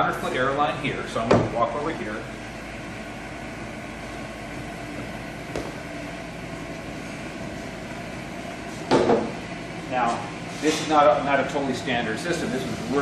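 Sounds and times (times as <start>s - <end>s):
machine hum: 0.0s - 13.0s.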